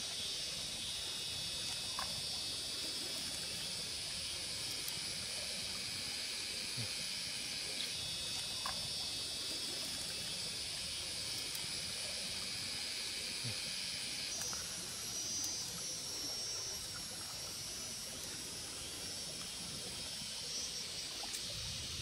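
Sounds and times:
high-pitched insect drone: 0:00.0 - 0:22.0
faint ticks: 0:01.6 - 0:02.3, 0:03.1 - 0:05.0, 0:07.8 - 0:08.9, 0:11.3 - 0:11.8, 0:14.3 - 0:15.8, 0:20.6 - 0:21.5.

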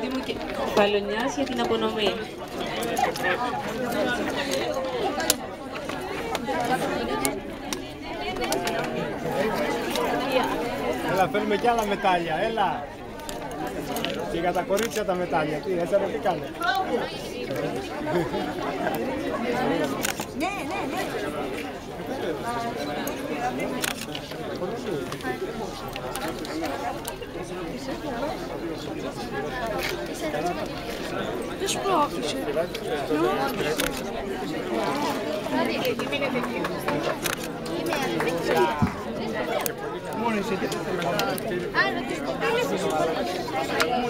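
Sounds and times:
crowd talking: 0:00.0 - 0:44.0
murmur of overlapping voices: 0:00.0 - 0:44.0.

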